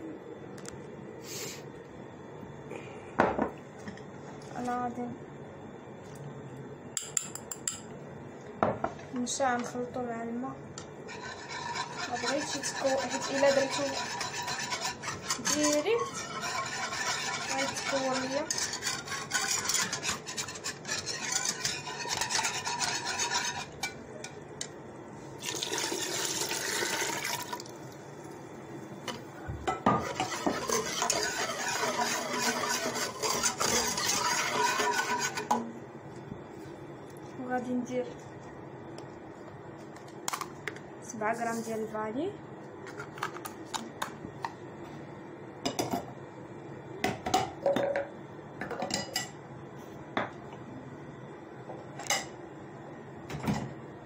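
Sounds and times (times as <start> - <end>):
metal whisk scraping and rattling: 11.1 - 24.0, 30.0 - 35.6.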